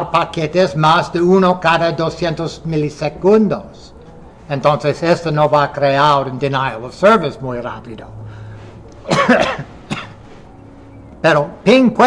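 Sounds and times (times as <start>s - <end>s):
man coughing: 9.0s - 10.2s.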